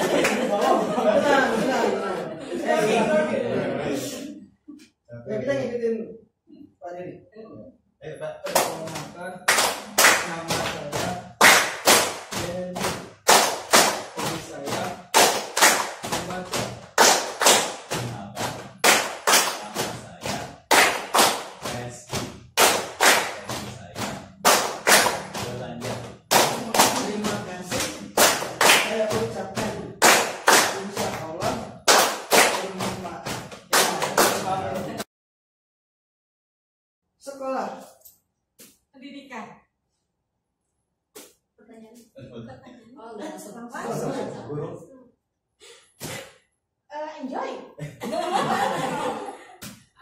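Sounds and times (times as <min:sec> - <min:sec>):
group clapping in rhythm: 0:00.0 - 0:03.0, 0:08.4 - 0:35.1, 0:48.0 - 0:50.0
voices: 0:00.0 - 0:04.5, 0:41.8 - 0:45.0.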